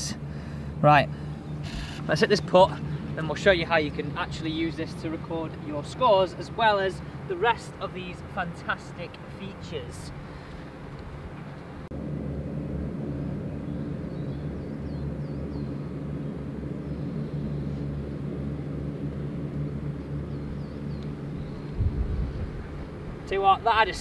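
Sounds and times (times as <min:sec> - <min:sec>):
distant engine drone: 0:00.0 - 0:24.0.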